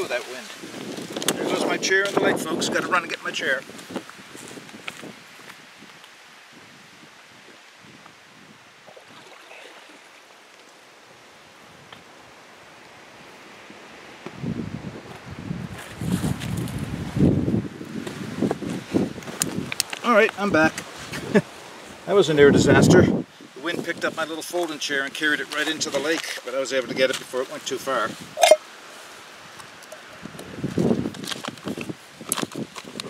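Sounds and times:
wind buffeting microphone: 0:00.0 - 0:09.4, 0:13.2 - 0:24.4, 0:29.5 - 0:33.0
light wind: 0:00.0 - 0:33.0.

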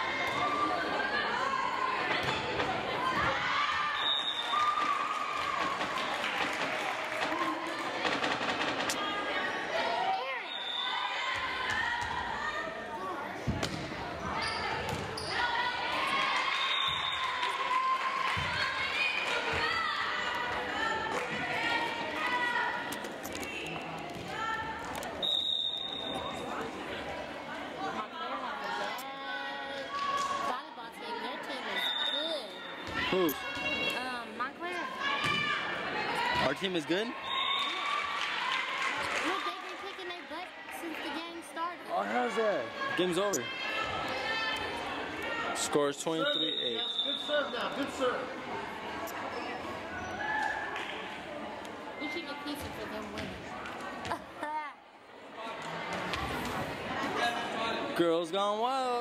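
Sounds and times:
chatter of people: 0:05.4 - 0:16.9, 0:18.4 - 0:37.8, 0:38.6 - 0:59.0.

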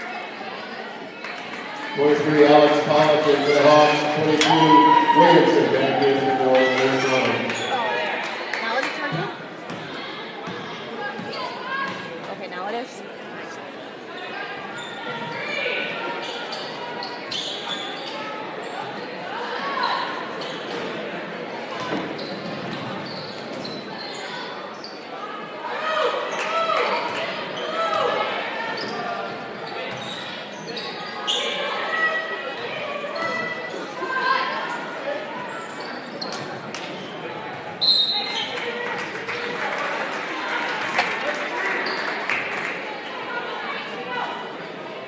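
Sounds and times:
shouting and chatter echoing: 0:00.0 - 0:45.0.

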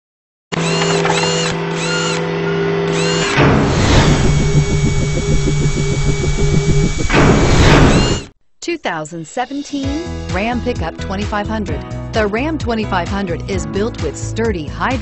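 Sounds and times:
fast mechanical pulsing: 0:00.6 - 0:02.3, 0:02.9 - 0:08.3
steady machine whir: 0:00.6 - 0:08.3
whoosh: 0:03.4 - 0:08.3.

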